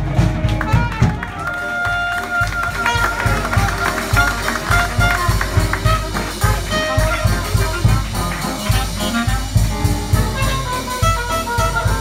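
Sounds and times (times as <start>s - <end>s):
drums: 0.0s - 12.0s
piano: 0.0s - 12.0s
clarinet: 0.4s - 12.0s.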